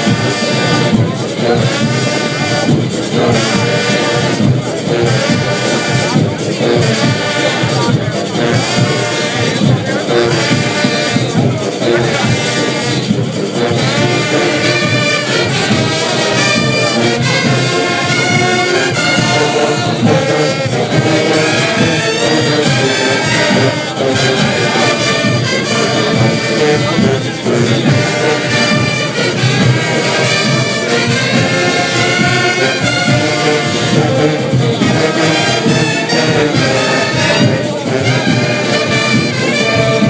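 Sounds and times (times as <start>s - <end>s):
brass band music: 0.0s - 40.0s
crowd voices: 0.0s - 40.0s.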